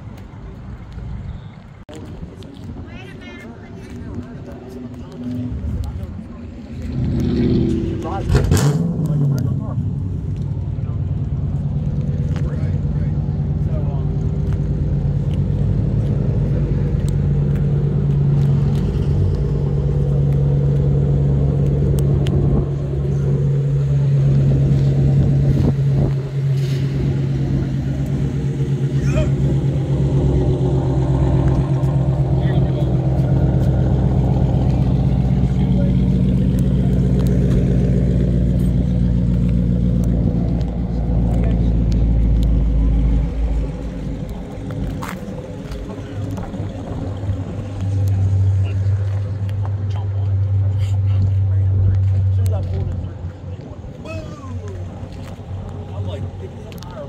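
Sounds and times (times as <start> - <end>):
car engine idling: 2.8 - 57.0.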